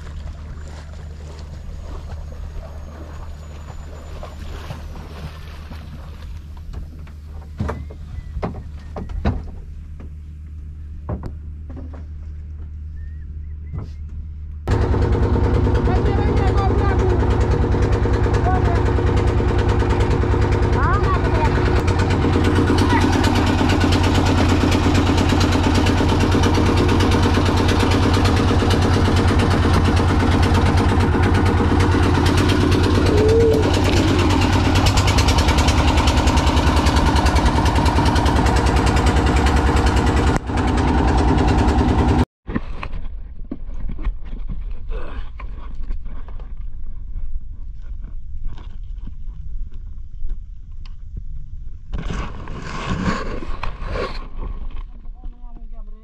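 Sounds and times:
water splashes: 0.0 - 8.0, 15.8 - 39.4
boat engine running: 0.0 - 56.0.

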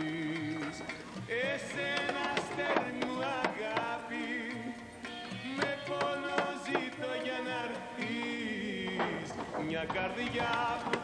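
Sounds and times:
drum strikes: 0.4 - 11.0.

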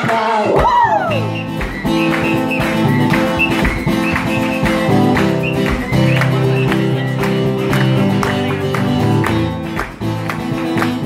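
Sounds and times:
acoustic guitar strumming chords: 0.5 - 11.0.

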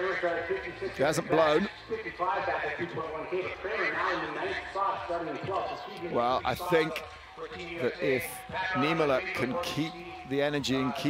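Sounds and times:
people shouting and cheering: 0.0 - 11.0.

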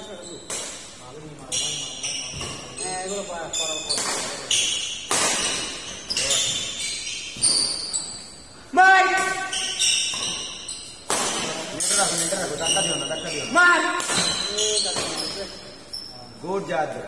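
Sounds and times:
shoes squeaking: 0.0 - 17.0
rackets hitting shuttlecock: 0.4 - 8.2, 9.0 - 13.1, 13.7 - 15.5.

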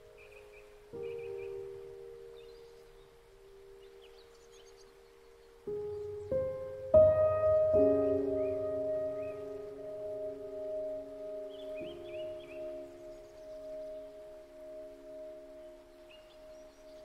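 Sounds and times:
soft digital piano: 0.0 - 17.0.

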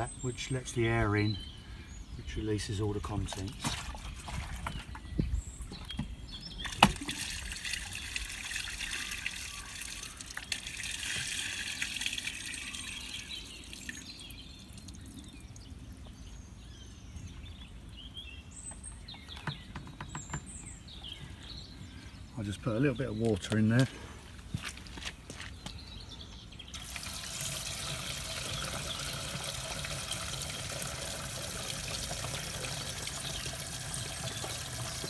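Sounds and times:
waste pouring into a drain: 6.7 - 14.0, 26.7 - 35.0.

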